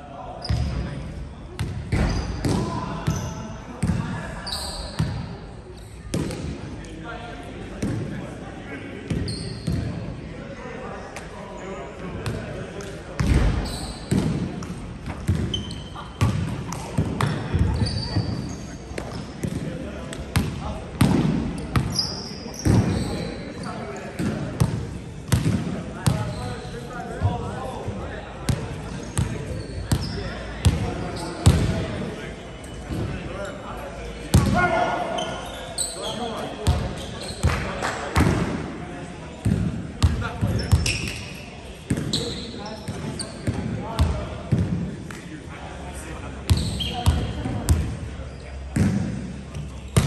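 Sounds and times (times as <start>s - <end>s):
sneakers squeaking on hardwood: 0.4s - 0.8s, 1.9s - 3.4s, 4.4s - 6.2s, 9.1s - 9.9s, 13.2s - 14.4s, 15.1s - 19.6s, 21.6s - 23.8s, 28.9s - 31.7s, 34.4s - 37.7s, 39.4s - 44.1s, 46.5s - 48.9s.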